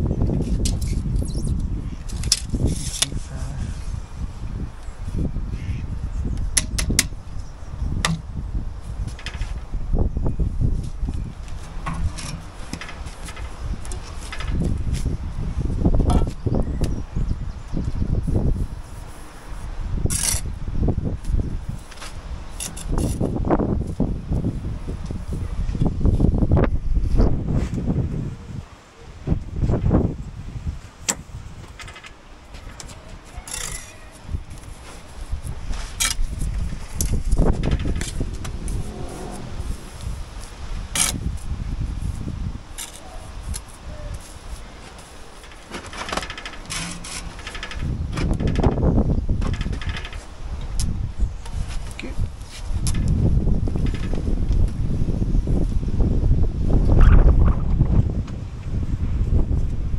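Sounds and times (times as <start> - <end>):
uneven low rumble: 36.2 - 42.2.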